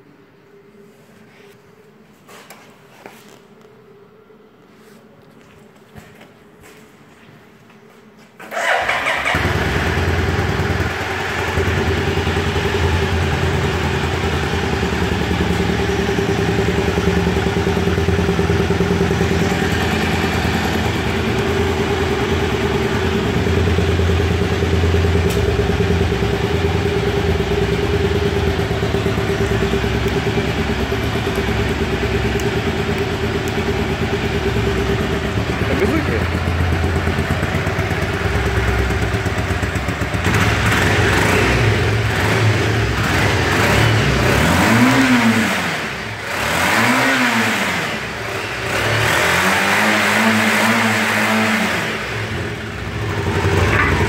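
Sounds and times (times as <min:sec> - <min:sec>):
motorcycle engine revving: 0:08.4 - 0:54.0
motorcycle engine idling: 0:08.6 - 0:44.2, 0:52.0 - 0:54.0.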